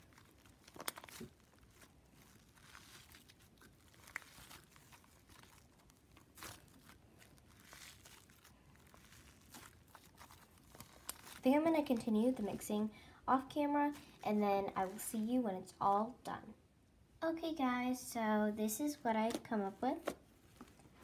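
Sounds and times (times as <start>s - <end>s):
slime squishing and crackling: 0.0s - 15.3s.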